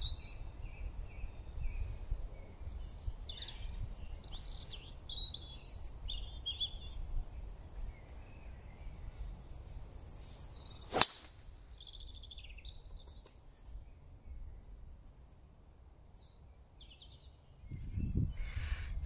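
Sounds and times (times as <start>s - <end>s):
wind rumble on microphone: 0.0s - 9.6s, 17.5s - 19.0s
birds chirping: 0.0s - 14.9s
golf club striking ball: 10.9s - 11.4s.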